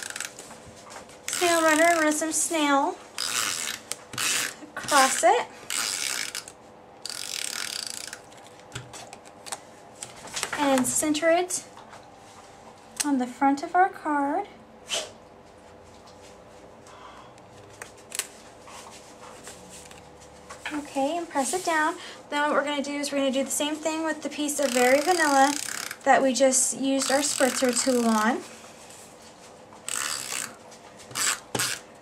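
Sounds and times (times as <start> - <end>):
tape runner zipping rasp: 0.0 - 0.4, 1.3 - 2.3, 3.1 - 9.2, 24.5 - 26.1, 27.0 - 28.4, 29.9 - 31.9.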